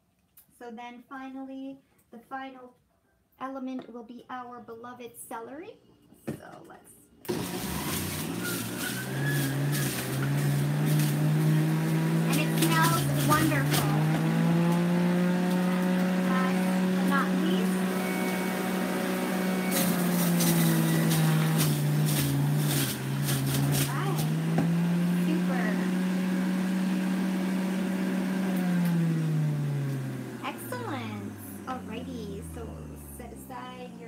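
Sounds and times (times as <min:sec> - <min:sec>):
juicer motor whine: 0:07.2 - 0:34.0
celery stalks crackling: 0:07.8 - 0:14.0, 0:19.7 - 0:24.4.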